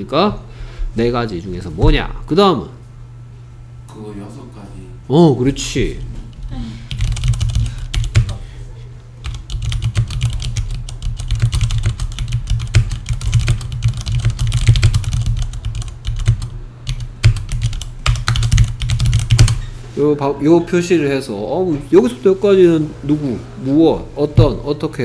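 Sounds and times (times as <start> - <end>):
computer keyboard typing: 6.9 - 8.4, 9.2 - 19.7.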